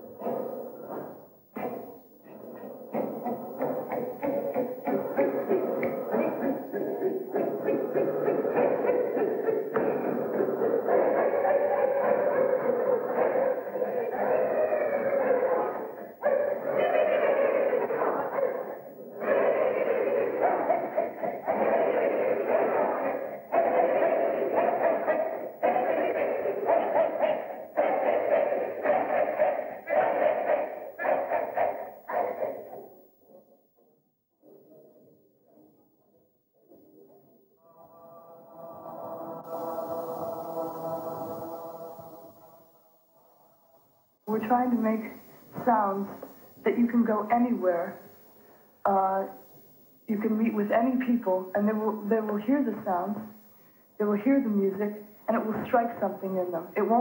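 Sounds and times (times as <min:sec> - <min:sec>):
choir singing wordless sounds: 0:00.0 - 0:33.2, 0:37.5 - 0:57.0.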